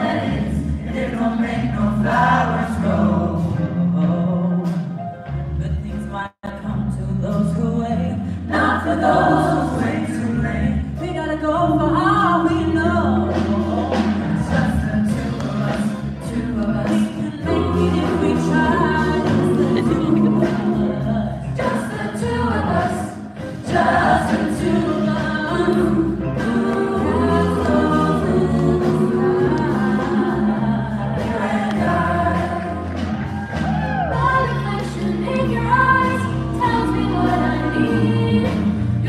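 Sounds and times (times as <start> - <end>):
mixed choir singing: 0.0 - 4.8, 8.5 - 10.9, 11.9 - 39.0.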